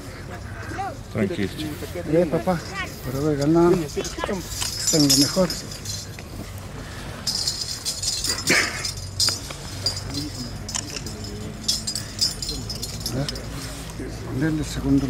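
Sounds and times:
faint murmured voices: 0.0s - 15.0s
metal medals chinking: 2.2s - 14.0s.

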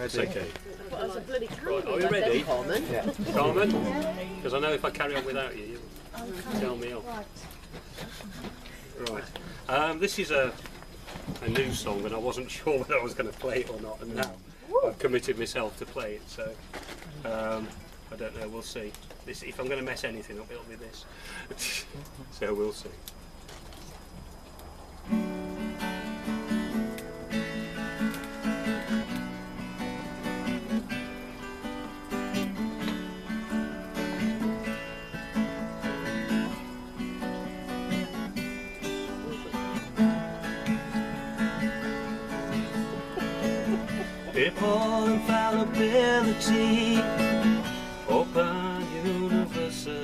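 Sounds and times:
acoustic guitar playing: 0.0s - 14.2s, 25.0s - 50.0s
man singing: 44.3s - 50.0s.

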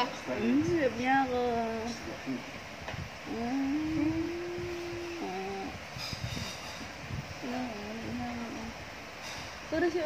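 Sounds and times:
person humming: 3.3s - 5.8s, 7.4s - 8.8s.

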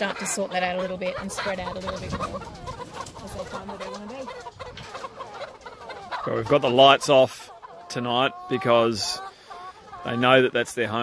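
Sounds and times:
hens clucking: 0.0s - 11.0s.

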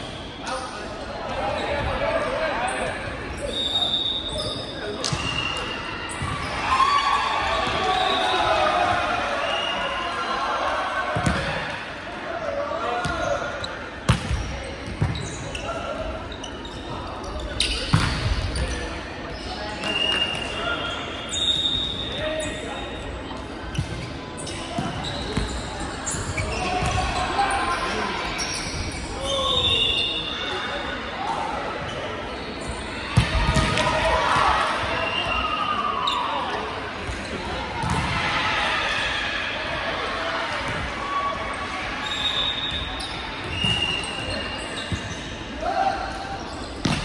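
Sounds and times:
sneakers squeaking on court: 3.2s - 6.6s, 13.0s - 30.3s, 31.8s - 33.8s, 37.0s - 38.1s, 42.0s - 45.5s, 46.3s - 47.0s.

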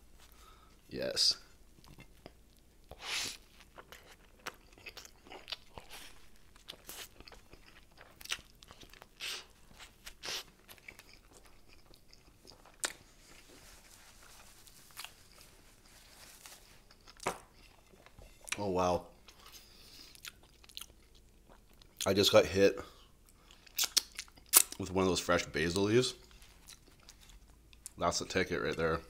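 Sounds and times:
chewing with wet smacks: 1.8s - 13.4s, 20.1s - 22.1s, 23.2s - 24.9s, 26.2s - 28.0s.

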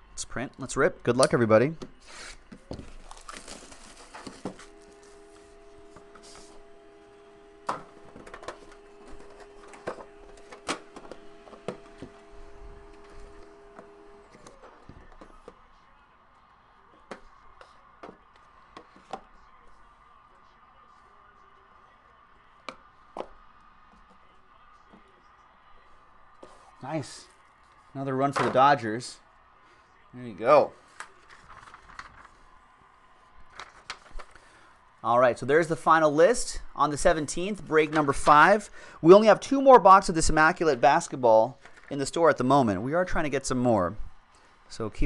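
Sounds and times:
faint multi-tone hum: 1.8s - 27.9s.

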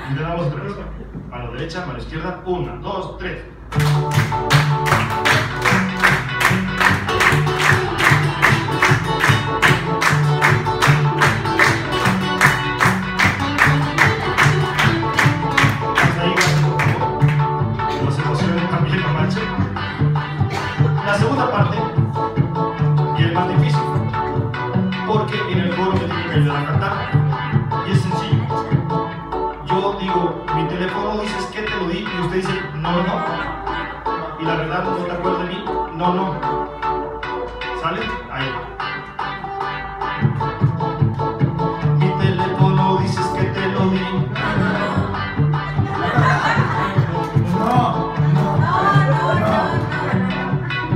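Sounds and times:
acoustic guitar strumming: 3.6s - 50.9s
audience clapping along: 3.7s - 18.2s, 45.8s - 50.7s.

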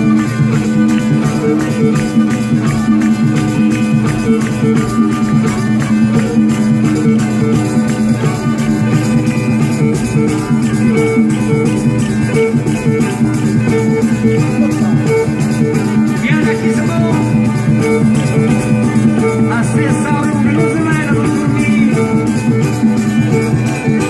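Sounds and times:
live folk band playing: 0.0s - 24.0s.

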